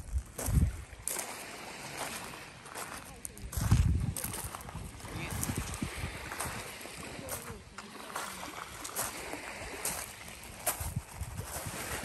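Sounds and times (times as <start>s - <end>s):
small waves lapping on pebbles: 0.0s - 12.0s.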